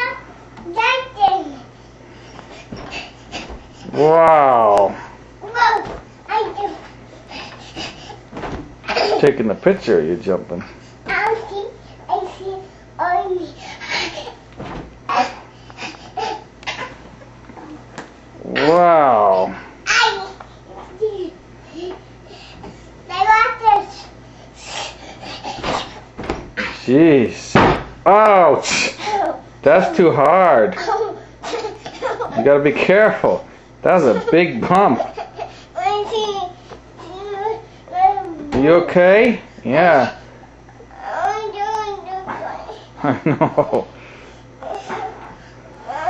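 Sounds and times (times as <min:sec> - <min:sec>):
bedding rustling and scuffing: 0:00.7 - 0:04.1, 0:05.0 - 0:12.6, 0:13.2 - 0:18.2, 0:20.6 - 0:28.0
soft thumps jumping on bed: 0:02.7 - 0:03.8, 0:07.8 - 0:09.0, 0:14.6 - 0:15.1, 0:25.6 - 0:26.7.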